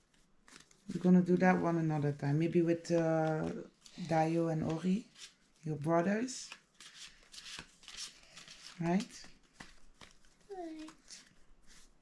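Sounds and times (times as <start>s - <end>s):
cards being shuffled: 0.0s - 1.8s, 2.4s - 12.0s.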